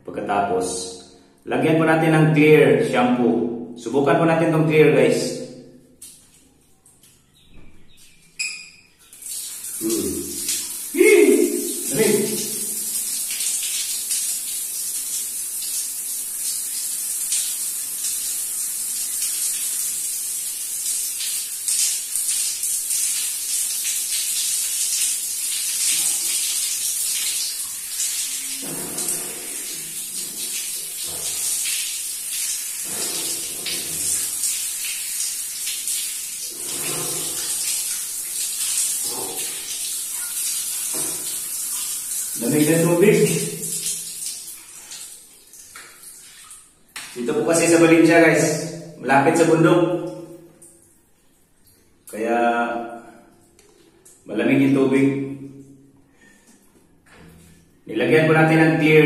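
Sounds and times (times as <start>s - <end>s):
shower water spraying and splashing: 9.1s - 47.7s.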